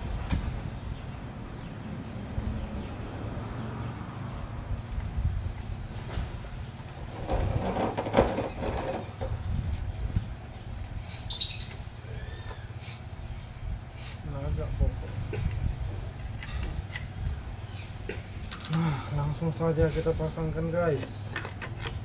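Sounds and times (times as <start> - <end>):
bird chirps: 10.0 - 13.0
handling noise of rifle stock: 21.0 - 22.0.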